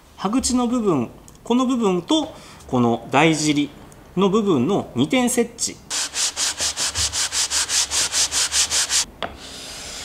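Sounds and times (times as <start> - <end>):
steady hiss: 5.9 - 10.0
wood sanded by hand: 5.9 - 10.0.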